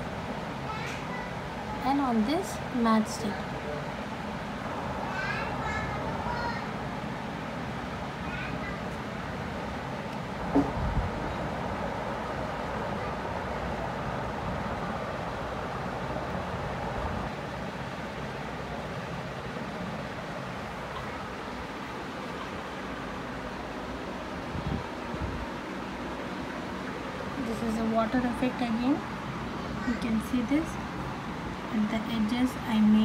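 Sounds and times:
steady rushing noise: 0.0 - 33.0.

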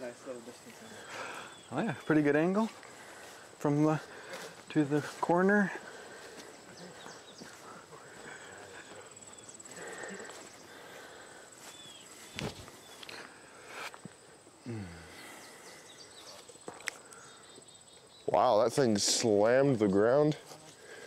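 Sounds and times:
insects buzzing: 0.0 - 21.0.

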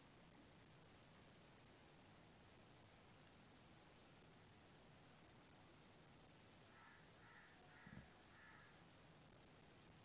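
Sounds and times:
bird calling faintly: 6.6 - 8.9.

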